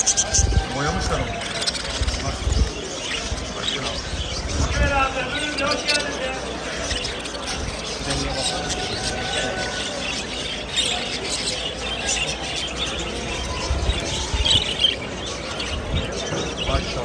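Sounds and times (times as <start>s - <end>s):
budgerigars chattering and chirping: 0.0s - 17.0s
murmur of voices: 0.0s - 17.0s.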